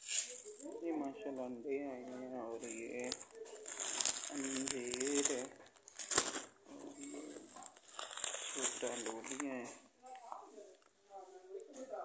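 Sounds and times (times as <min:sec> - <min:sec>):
plastic bags crinkling: 0:00.0 - 0:09.8
person speaking: 0:00.0 - 0:12.0.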